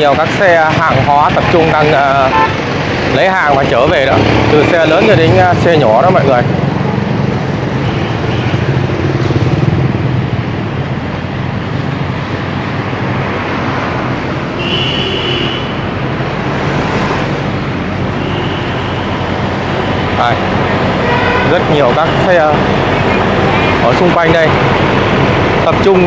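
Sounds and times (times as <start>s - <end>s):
motorbike and lorry engines: 0.0s - 26.0s
road noise: 0.0s - 26.0s.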